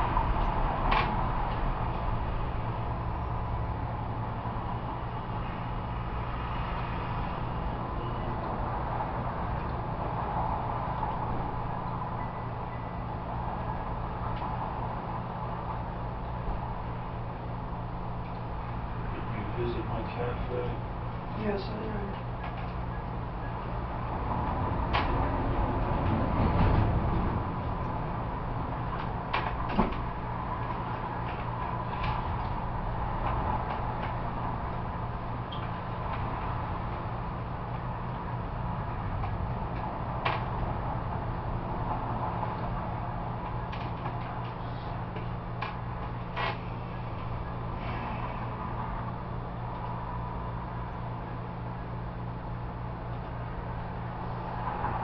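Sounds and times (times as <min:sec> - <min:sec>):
low room hum: 0:00.0 - 0:55.0.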